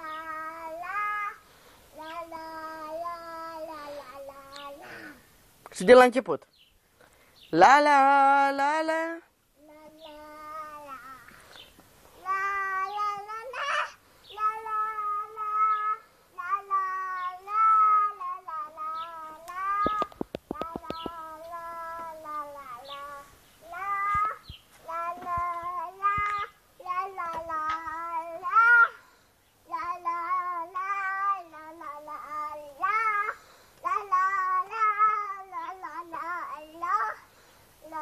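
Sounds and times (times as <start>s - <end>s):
girl singing unaccompanied: 0.0s - 5.5s, 8.0s - 38.0s.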